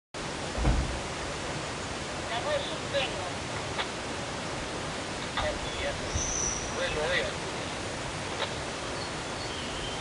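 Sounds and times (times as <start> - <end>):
flowing stream water: 0.2 - 10.0
low thump: 0.5 - 1.1.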